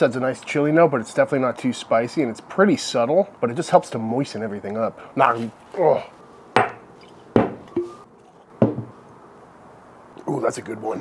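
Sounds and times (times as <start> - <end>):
glass knocking on wooden table: 8.6 - 8.9.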